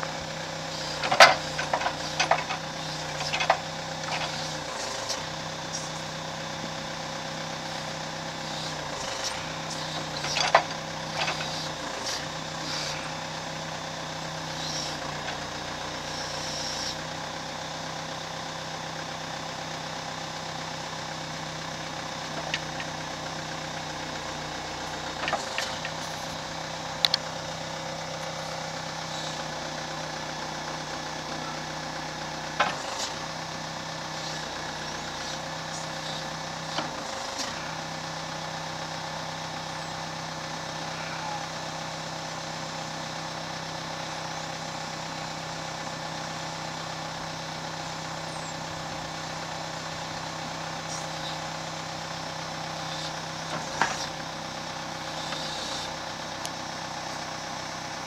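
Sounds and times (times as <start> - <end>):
backhoe engine running: 0.0 - 58.0.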